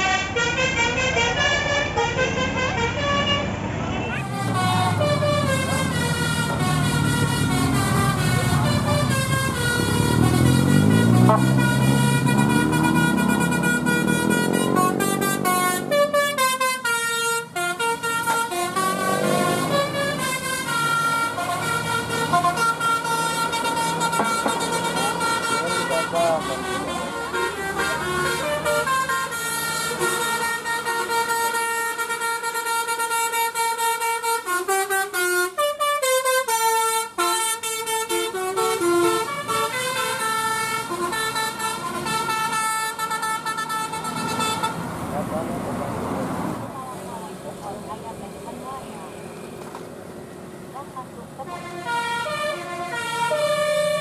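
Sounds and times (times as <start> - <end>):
musical air horn melody: 0.0 - 44.9, 51.4 - 54.0
engine revving: 2.0 - 31.4, 38.0 - 54.0.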